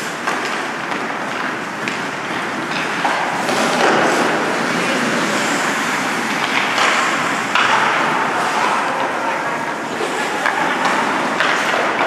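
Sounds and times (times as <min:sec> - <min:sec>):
skates scraping ice: 0:00.0 - 0:12.0.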